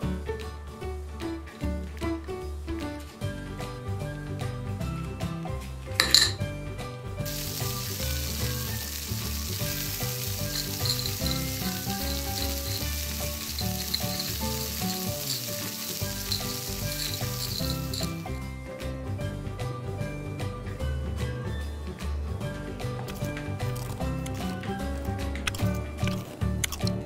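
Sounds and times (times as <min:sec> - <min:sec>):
light background music: 0:00.0 - 0:27.0
frying pan sizzling: 0:06.0 - 0:06.4, 0:07.2 - 0:18.5.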